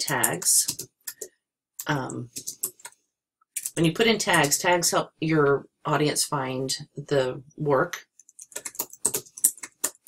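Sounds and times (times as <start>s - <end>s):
keyboard typing clicks: 8.2s - 10.0s.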